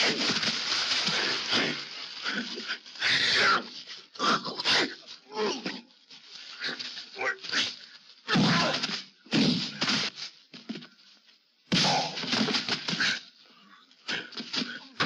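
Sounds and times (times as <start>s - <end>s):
scuffling in straw: 0.0s - 3.7s.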